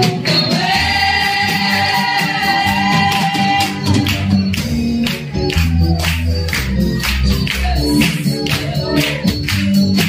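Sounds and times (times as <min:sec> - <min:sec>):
congregation singing along: 0:00.0 - 0:04.8.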